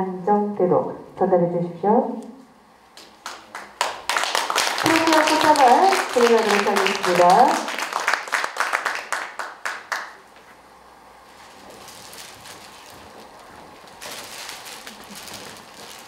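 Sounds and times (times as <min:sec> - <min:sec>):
audience clapping: 0:03.0 - 0:10.3.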